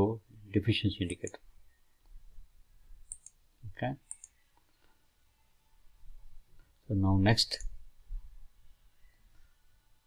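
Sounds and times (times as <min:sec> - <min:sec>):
computer mouse clicks: 0:01.0 - 0:01.4, 0:03.0 - 0:03.4, 0:04.0 - 0:04.8.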